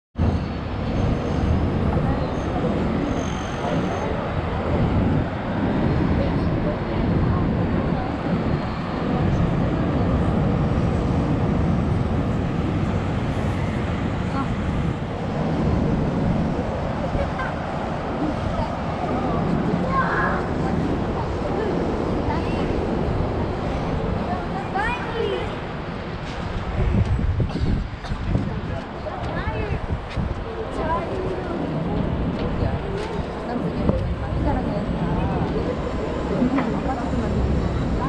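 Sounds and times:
wind: 0.1s - 38.0s
traffic rumble: 0.2s - 38.0s
indistinct voices: 0.3s - 38.0s.

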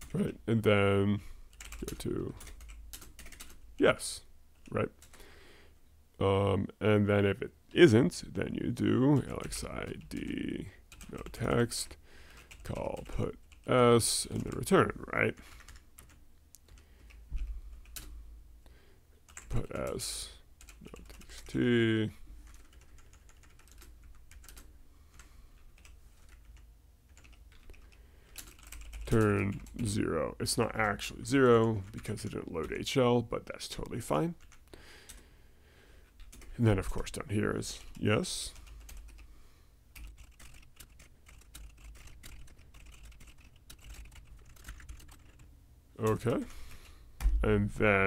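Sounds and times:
computer keyboard typing: 1.5s - 3.6s, 10.9s - 11.6s, 12.3s - 13.7s, 14.3s - 14.7s, 15.4s - 18.1s, 19.3s - 20.0s, 20.6s - 21.6s, 22.4s - 29.8s, 30.8s - 32.8s, 34.4s - 35.2s, 36.1s - 36.5s, 37.8s - 39.2s, 40.0s - 46.5s.

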